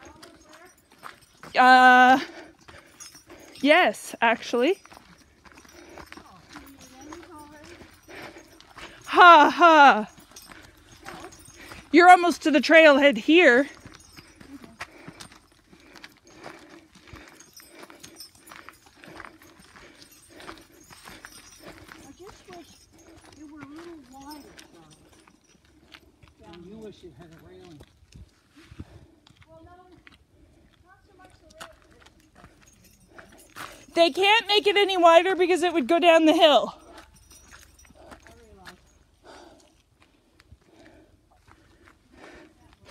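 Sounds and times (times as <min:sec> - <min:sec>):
faint conversation: 0:00.0 - 0:39.3
footsteps on dirt trail: 0:00.0 - 0:42.9.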